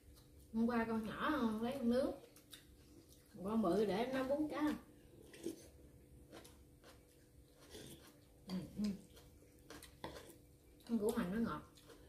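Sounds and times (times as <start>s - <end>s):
soft chewing: 0.0s - 0.7s, 1.5s - 12.0s.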